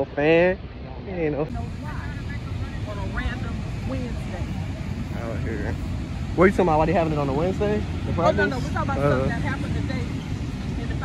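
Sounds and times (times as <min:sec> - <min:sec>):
faint distant voices: 0:00.0 - 0:11.0
low uneven city rumble: 0:00.0 - 0:11.0.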